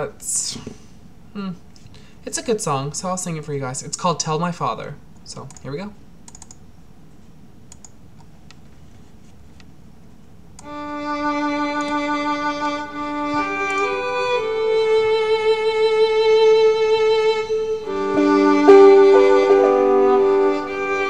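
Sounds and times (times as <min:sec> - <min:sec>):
held string notes with violin: 0:10.6 - 0:21.0.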